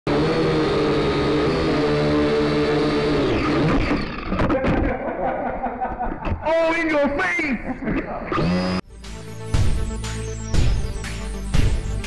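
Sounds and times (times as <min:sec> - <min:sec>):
motor running: 0:00.1 - 0:04.4, 0:08.3 - 0:12.0.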